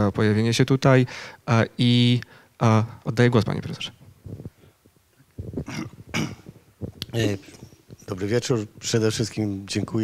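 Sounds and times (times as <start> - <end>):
microphone handling bumps: 4.0 - 8.9.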